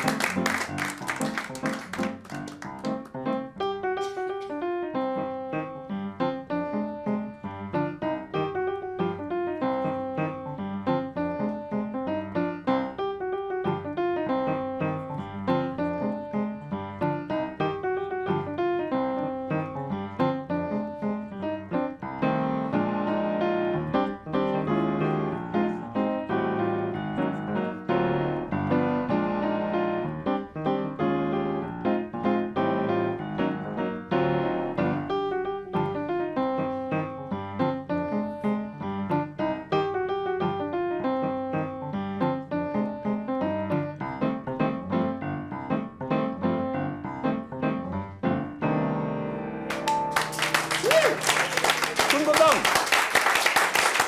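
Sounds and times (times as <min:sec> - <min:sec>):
upright piano playing: 0:00.0 - 0:54.0.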